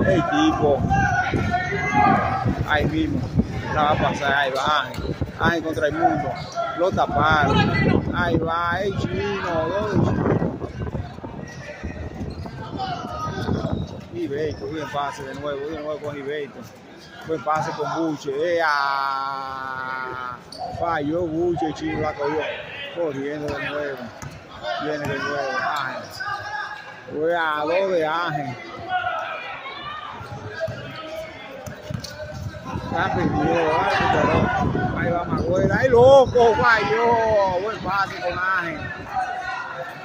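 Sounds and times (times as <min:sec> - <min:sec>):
voices talking: 0:00.0 - 0:40.0.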